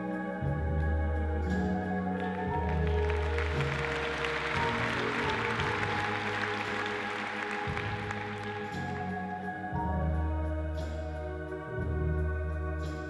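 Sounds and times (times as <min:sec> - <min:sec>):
organ-like backing music: 0:00.0 - 0:13.0
audience applause: 0:02.2 - 0:09.2.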